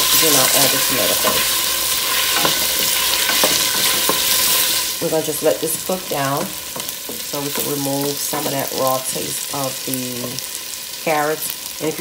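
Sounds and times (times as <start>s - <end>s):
wooden spoon stirring: 0.0s - 9.5s
vegetables sizzling in oil: 0.0s - 12.0s.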